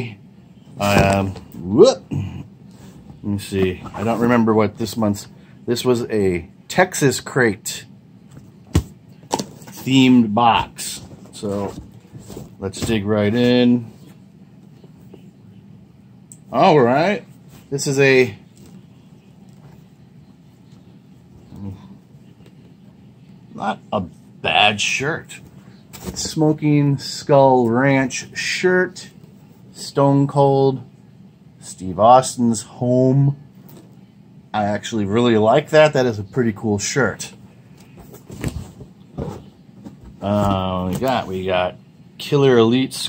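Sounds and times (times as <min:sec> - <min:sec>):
man murmuring: 0:01.0 - 0:02.6.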